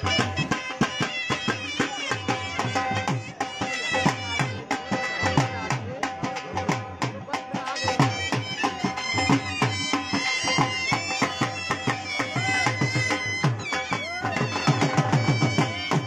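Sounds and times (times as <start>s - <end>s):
wind instrument melody over drone: 0.0s - 5.6s, 7.6s - 16.0s
dhol drumming dance beat: 0.0s - 16.0s.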